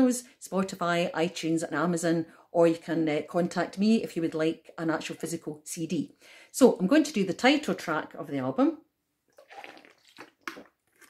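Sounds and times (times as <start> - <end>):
person swallowing: 9.3 - 11.0
water sloshing in bottle: 9.3 - 11.0.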